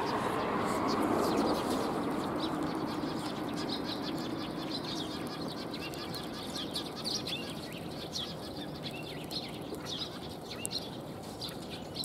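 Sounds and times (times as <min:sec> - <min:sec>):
sparrows chirping: 0:00.0 - 0:12.0.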